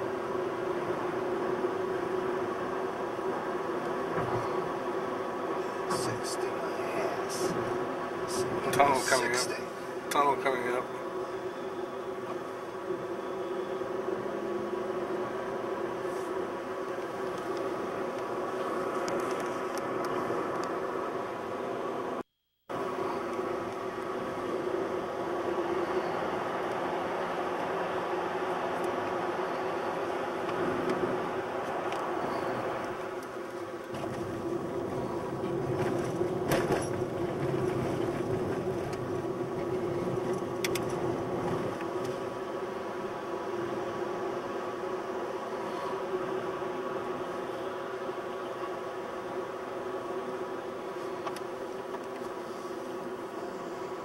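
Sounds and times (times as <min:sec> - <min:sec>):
car engine drone: 0:00.0 - 0:54.0
tyre and road noise: 0:13.8 - 0:42.7.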